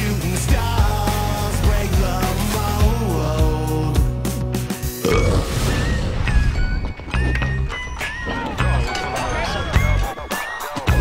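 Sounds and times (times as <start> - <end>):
song ending: 0.0 - 9.2.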